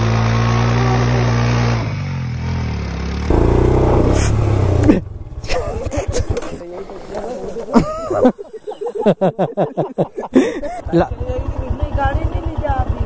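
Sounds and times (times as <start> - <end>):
motorcycle engine revving: 0.0 - 6.6, 10.9 - 13.0
people's voices: 3.3 - 13.0.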